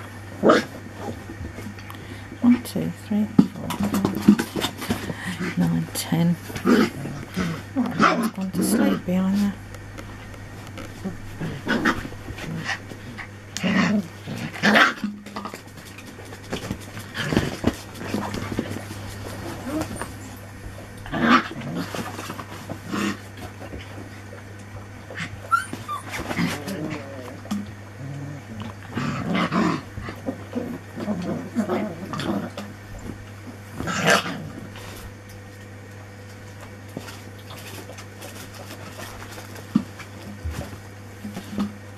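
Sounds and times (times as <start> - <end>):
steady low hum: 0.0 - 41.9
puppies yelping: 25.1 - 27.4.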